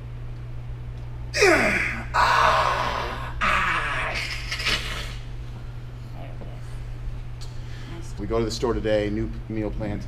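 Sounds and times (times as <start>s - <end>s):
man groaning: 1.4s - 4.7s.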